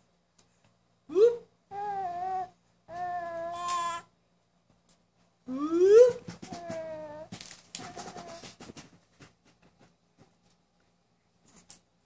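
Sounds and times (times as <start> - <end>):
baby cooing squeal: 1.7 - 4.1.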